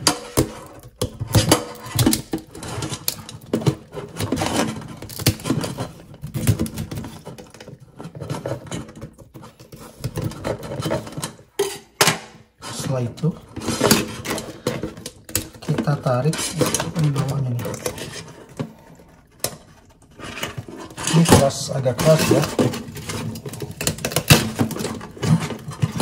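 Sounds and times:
knife scraping crab shell: 0:00.0 - 0:12.0.

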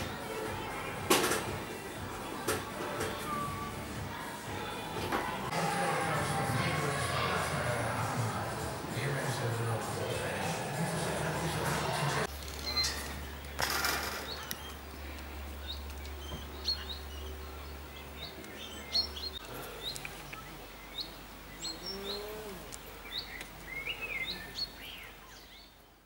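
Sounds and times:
small birds chirping: 0:12.2 - 0:26.0.

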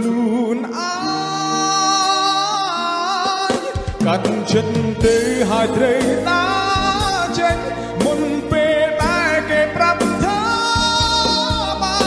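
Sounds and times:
band playing a steady beat: 0:03.3 - 0:12.0.

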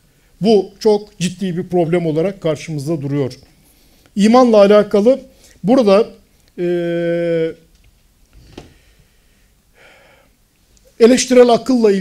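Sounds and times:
man breathing: 0:08.5 - 0:10.4.

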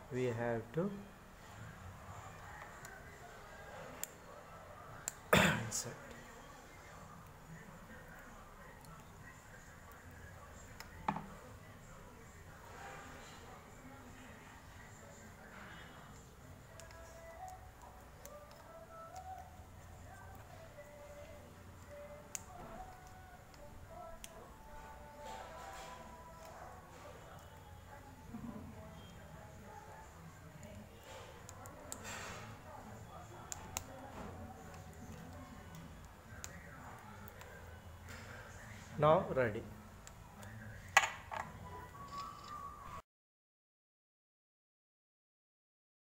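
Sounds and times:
faint background music: 0:00.0 - 0:43.0.

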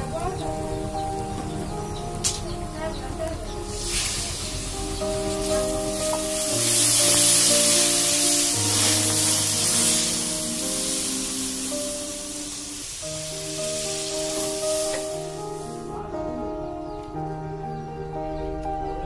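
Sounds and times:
background music: 0:00.0 - 0:19.0
water sizzling in hot oil: 0:03.6 - 0:15.8.

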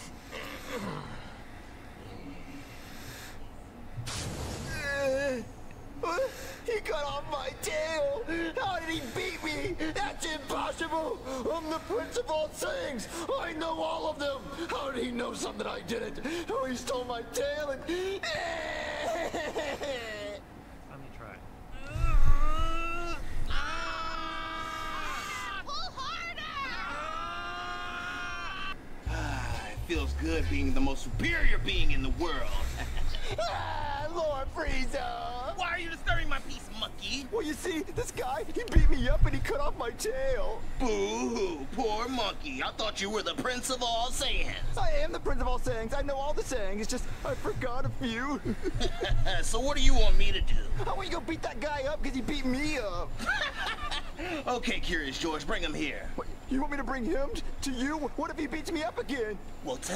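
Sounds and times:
faint low background noise: 0:00.0 - 0:59.9
cartoon character screaming: 0:21.8 - 0:28.8.

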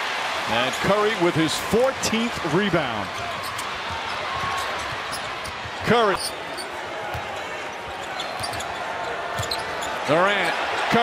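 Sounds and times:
arena crowd noise: 0:00.0 - 0:11.0
basketball dribbling: 0:03.2 - 0:06.4, 0:07.1 - 0:08.8, 0:09.4 - 0:09.8
shoe squeaks: 0:03.2 - 0:10.6.

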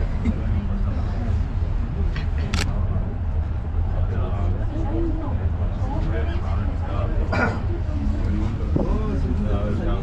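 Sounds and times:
low rumble inside tramway cabin: 0:00.0 - 0:10.0.

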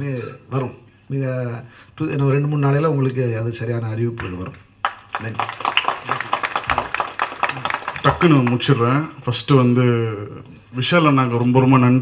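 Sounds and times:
people clapping: 0:04.8 - 0:08.9.

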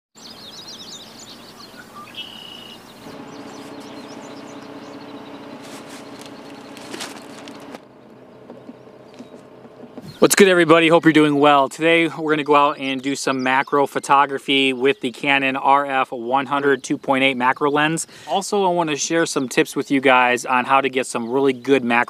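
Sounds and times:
birds chirping: 0:00.2 - 0:22.0
steady low hum: 0:02.8 - 0:10.2.

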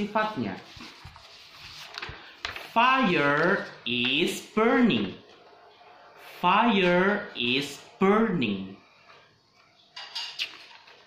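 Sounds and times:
paper rustling and crinkling: 0:00.0 - 0:04.3, 0:10.5 - 0:11.0.

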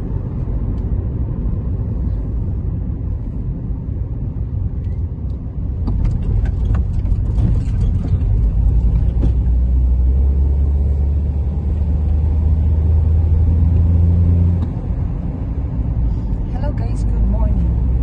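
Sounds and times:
car engine and road noise: 0:00.0 - 0:18.0.

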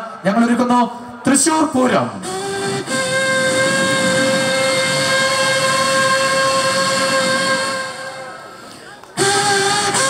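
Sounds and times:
vocal rumbling noise: 0:02.2 - 0:08.5
voices imitating train whistle: 0:02.2 - 0:10.0.

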